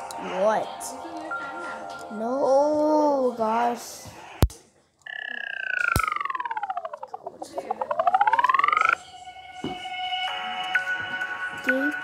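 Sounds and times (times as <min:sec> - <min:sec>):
music: 0:00.0 - 0:03.7, 0:08.9 - 0:12.0
pulsing synthetic tone sliding: 0:05.1 - 0:09.0
sharp electronic hits: 0:05.1 - 0:09.0.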